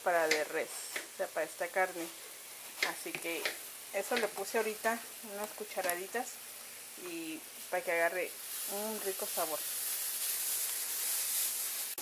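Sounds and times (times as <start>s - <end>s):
beef sizzling in oil: 0.0s - 12.0s.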